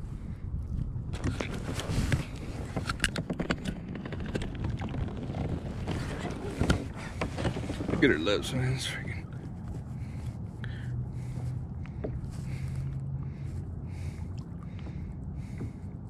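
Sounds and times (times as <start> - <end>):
wind rumble on microphone: 0.0 - 16.0
light water splashing: 11.2 - 15.9.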